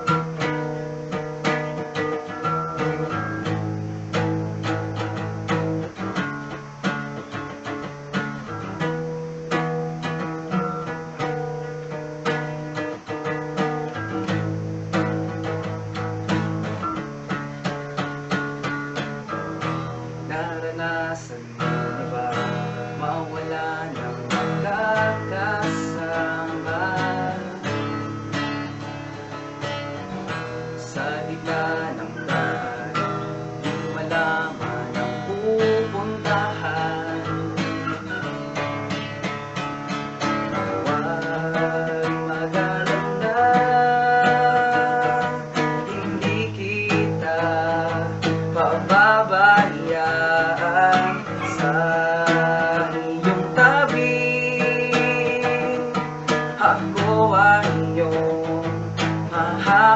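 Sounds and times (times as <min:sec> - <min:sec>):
acoustic guitar strumming chords: 0:00.0 - 0:59.9.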